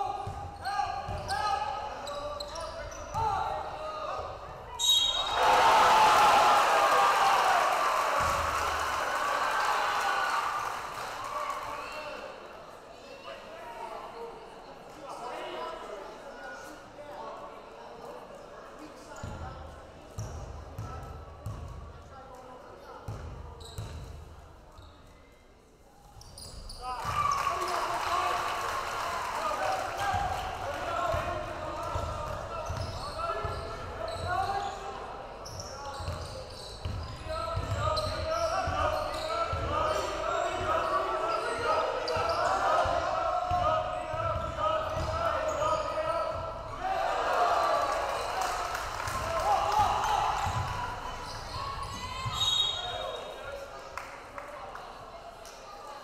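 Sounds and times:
crowd voices in a large hall: 0.0 - 56.0.

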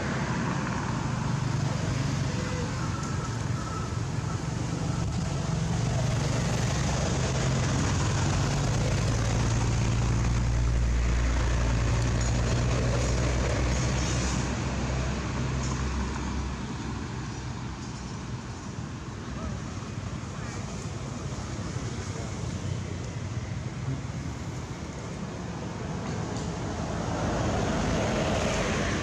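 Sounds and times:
vehicle engine humming: 0.0 - 29.0.

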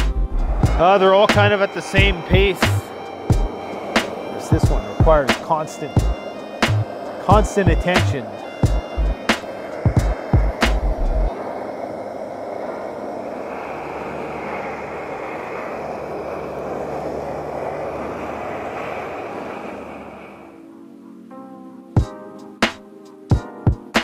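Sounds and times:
background music: 0.0 - 11.8, 20.6 - 24.0
stove burner roaring: 0.0 - 20.6.

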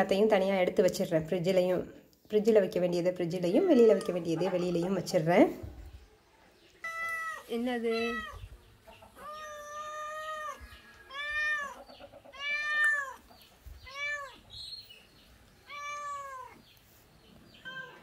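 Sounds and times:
cat meowing: 6.8 - 8.5, 9.2 - 13.2, 13.8 - 14.4, 15.6 - 16.6, 17.6 - 18.0.

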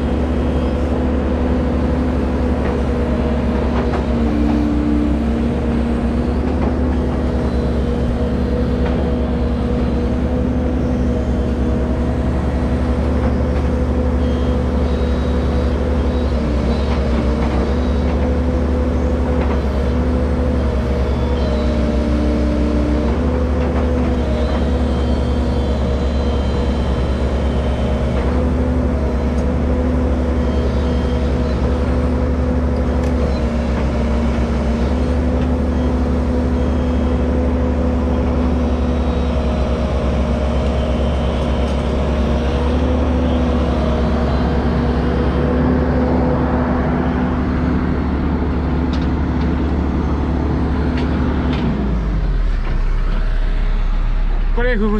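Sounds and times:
excavator diesel engine running: 0.0 - 54.9
hydraulic whine: 0.0 - 54.9.

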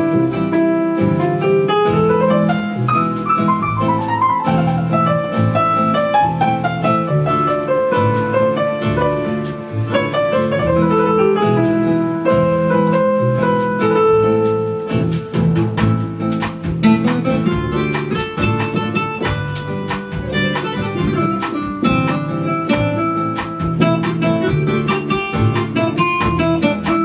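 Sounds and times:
light percussion beat: 0.0 - 27.0
piano melody: 0.0 - 27.0
plucked guitar-like accompaniment: 0.0 - 27.0.

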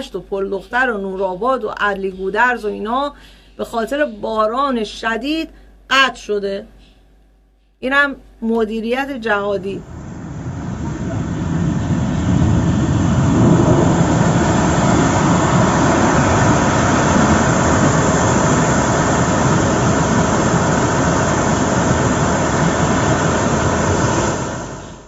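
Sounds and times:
floodwater roaring: 9.6 - 25.0.

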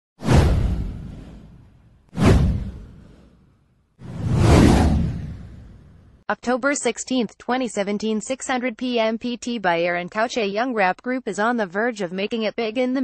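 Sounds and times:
whoosh sound effects: 0.2 - 3.4, 4.0 - 6.1.

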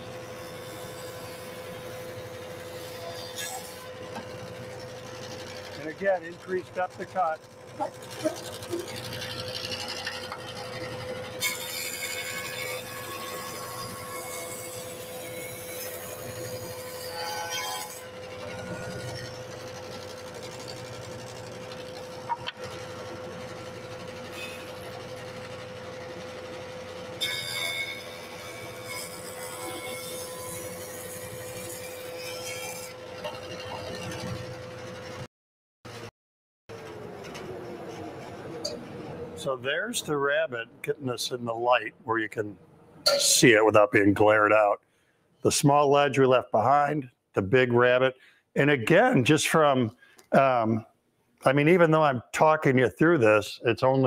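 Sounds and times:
jointer cutting wood: 0.0 - 35.3
jointer motor humming: 3.8 - 13.3, 18.0 - 32.2.

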